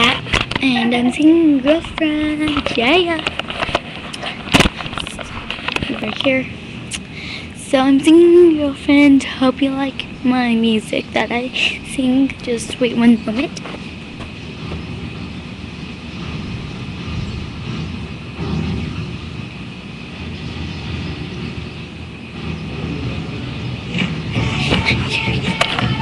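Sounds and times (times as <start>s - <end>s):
low room rumble and hiss: 0.0s - 26.0s
music: 24.0s - 26.0s.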